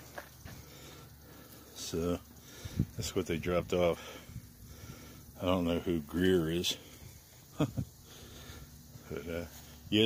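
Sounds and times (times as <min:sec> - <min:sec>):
breath intake: 0:00.5 - 0:03.0, 0:04.0 - 0:05.4, 0:08.0 - 0:09.1
man speaking: 0:01.8 - 0:02.3, 0:03.0 - 0:04.1, 0:05.4 - 0:06.8, 0:09.0 - 0:10.0.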